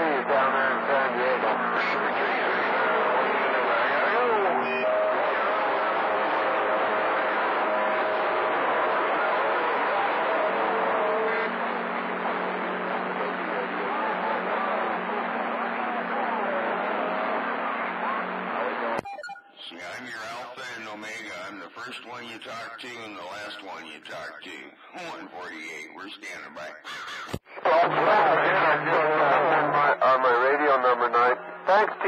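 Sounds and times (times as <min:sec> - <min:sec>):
faint garbled distant voices: 0:00.0 - 0:19.0
radio static: 0:19.6 - 0:32.0.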